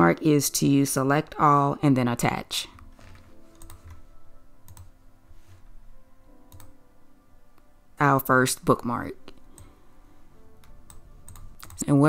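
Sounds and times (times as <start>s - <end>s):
person speaking: 0.0s - 2.8s, 11.6s - 12.0s
soft computer clicks: 3.5s - 4.0s, 6.5s - 6.8s, 10.6s - 11.9s.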